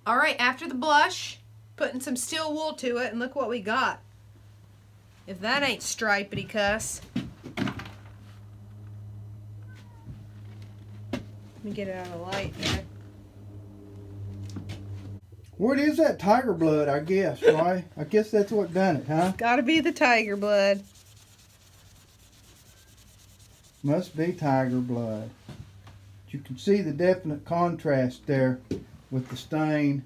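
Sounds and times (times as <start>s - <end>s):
steady low hum: 0.0s - 30.0s
steel wool rubbing metal: 18.8s - 25.0s.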